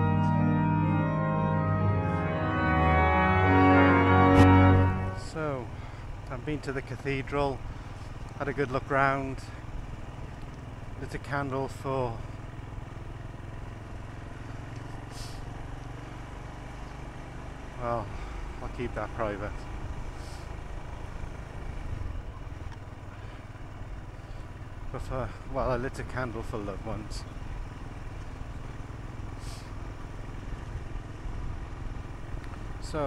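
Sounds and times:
motorcycle engine running: 4.8s - 33.0s.

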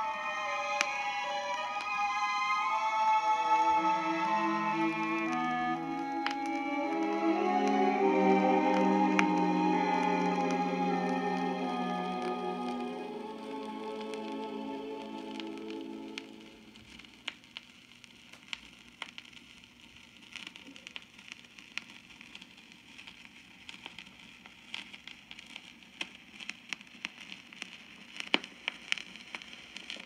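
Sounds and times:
orchestral music: 0.0s - 16.8s
vinyl record hiss and crackles: 0.0s - 30.0s.

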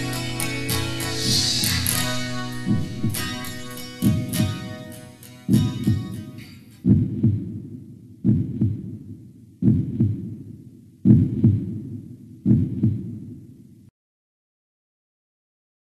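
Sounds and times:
low heartbeat thump: 2.6s - 4.8s, 5.5s - 6.2s, 6.8s - 13.4s.

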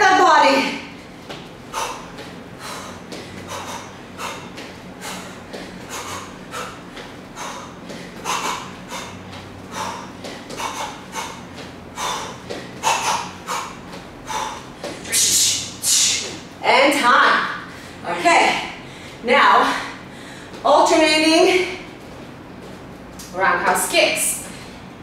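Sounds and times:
sharp exhalations while punching: 1.6s - 16.4s.

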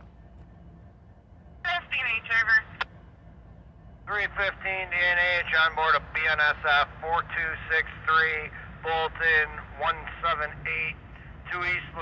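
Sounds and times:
low rumble: 0.0s - 12.0s
voice over scanner radio: 4.1s - 12.0s.

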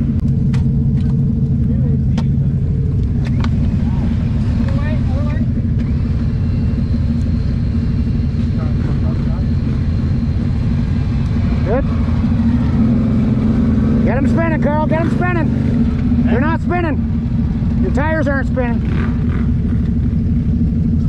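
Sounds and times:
atv engine running: 0.0s - 21.0s.

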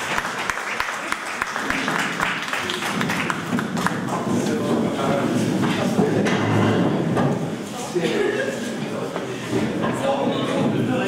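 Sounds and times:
audience applause: 0.0s - 4.7s
murmur of voices: 0.8s - 11.0s.

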